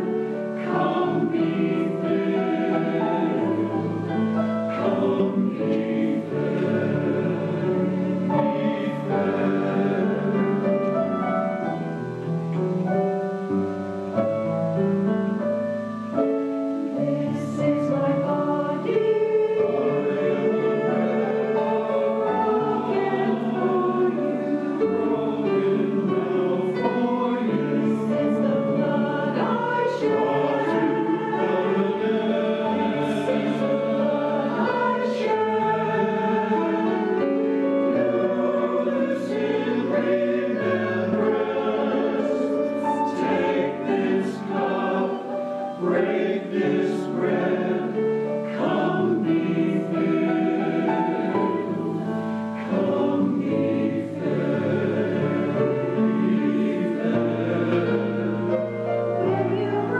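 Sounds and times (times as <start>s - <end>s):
choir singing in harmony: 0.0s - 59.9s.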